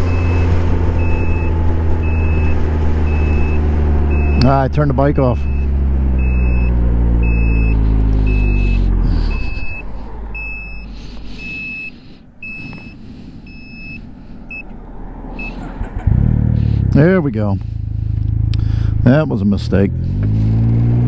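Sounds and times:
high beeps: 0.1s - 4.6s, 5.4s - 14.7s
motorcycle engine winding down: 15.4s - 17.1s.

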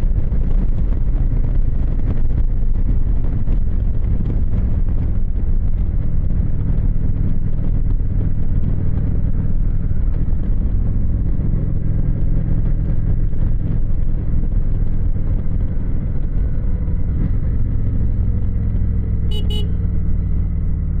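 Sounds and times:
wind rush: 0.0s - 18.1s
motorcycle engine running: 0.0s - 21.0s
short high-pitched beeps: 19.3s - 19.8s.

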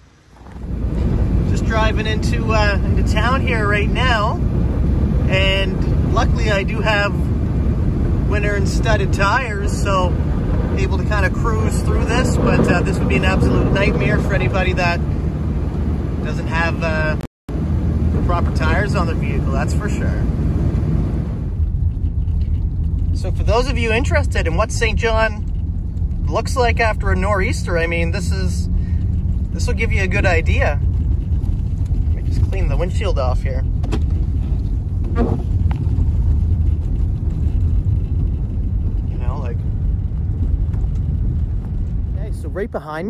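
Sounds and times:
car engine running: 0.0s - 43.0s
road rumble inside car: 0.0s - 43.0s
windshield wipers sweeping: 20.4s - 39.3s.

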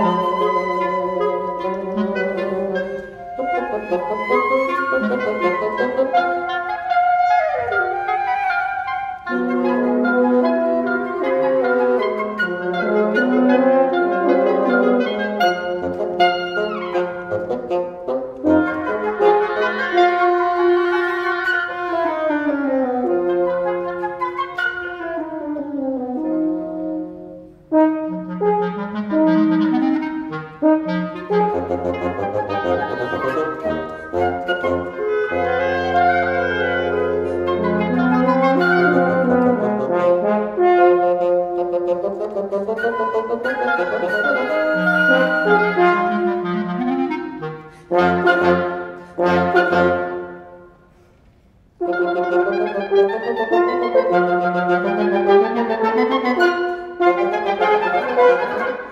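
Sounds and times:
woodwind quintet playing: 0.0s - 58.9s.

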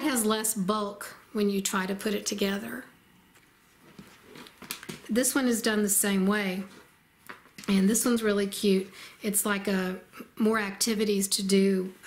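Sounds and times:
soft fabric rustling: 3.2s - 5.2s, 6.2s - 7.9s.

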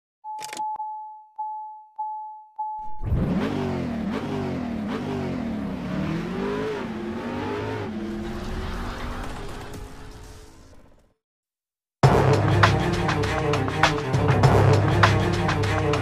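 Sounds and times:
warning chime beeps: 0.2s - 3.0s
car engine starting and revving: 2.8s - 11.1s.

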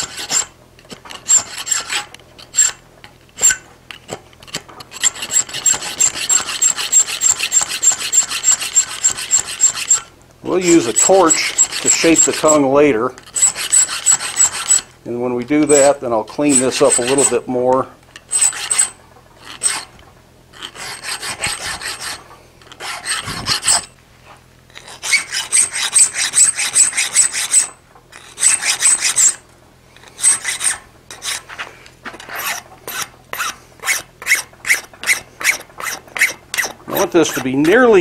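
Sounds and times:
hand file rasping on iron: 0.0s - 2.8s, 4.4s - 14.9s, 15.5s - 17.5s, 18.3s - 19.9s, 20.5s - 24.0s, 24.7s - 29.4s, 30.0s - 31.6s, 32.2s - 38.0s.

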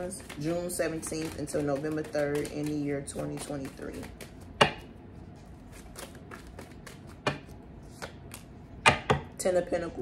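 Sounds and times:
cards being shuffled: 0.0s - 4.5s, 5.2s - 8.5s.

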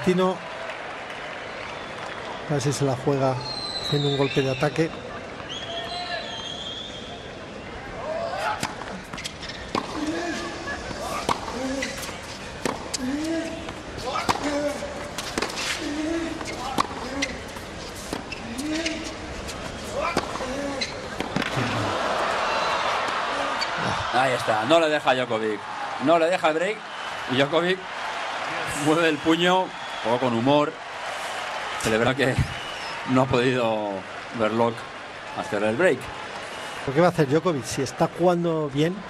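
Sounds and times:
crowd cheering and applauding: 0.0s - 3.3s, 21.2s - 37.1s
racket hitting tennis ball: 8.6s - 21.6s
tennis ball bouncing: 8.6s - 21.9s
player grunting: 13.0s - 14.9s.

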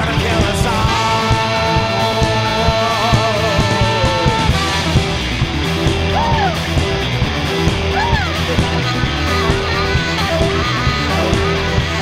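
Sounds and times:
punk rock band playing: 0.0s - 12.0s
swooping notes: 0.0s - 12.0s.

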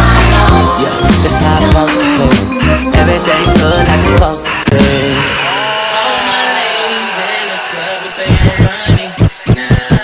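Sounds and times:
drums and bass: 0.0s - 5.5s, 8.2s - 10.0s.

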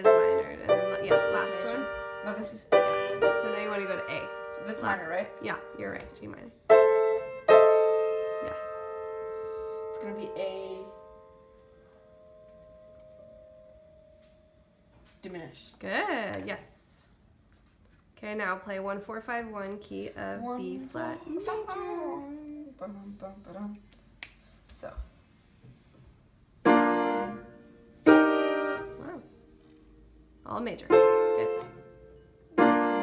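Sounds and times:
upright piano chord: 0.0s - 14.6s, 26.6s - 29.2s, 30.9s - 33.0s
person talking: 20.3s - 23.9s.

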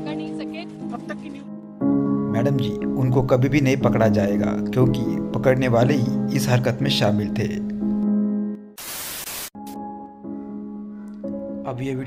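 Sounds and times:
background music with held notes: 0.0s - 8.7s, 9.6s - 12.0s
burst of static hiss: 8.8s - 9.6s.

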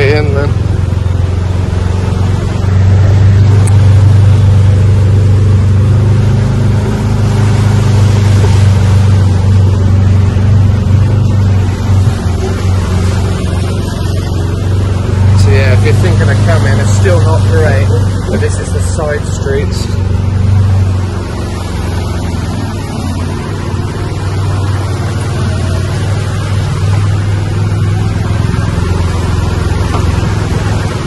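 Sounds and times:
buggy motor humming: 0.0s - 31.0s
wind and road noise: 0.0s - 31.0s.

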